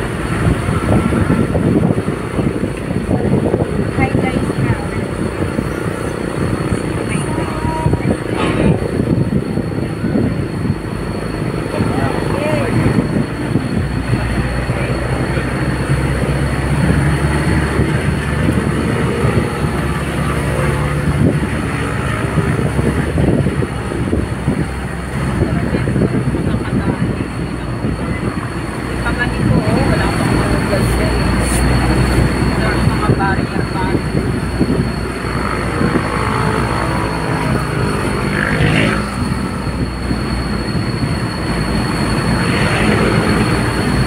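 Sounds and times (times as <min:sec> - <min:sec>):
faint voices: 0:00.0 - 0:44.0
high whine: 0:00.0 - 0:44.0
low engine hum: 0:00.0 - 0:44.0
tyres rumbling on road: 0:00.0 - 0:44.0.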